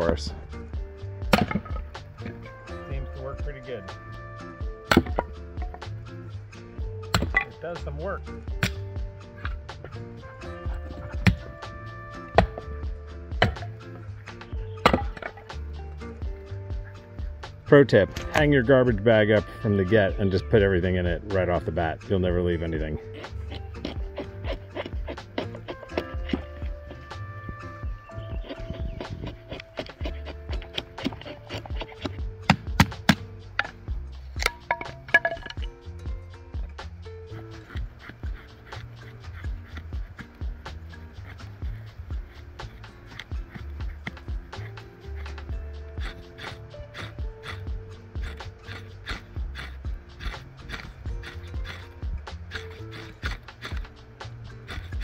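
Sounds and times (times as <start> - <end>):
music with steady beat and bass: 0.0 - 55.0
sharp knocks: 7.2 - 7.5.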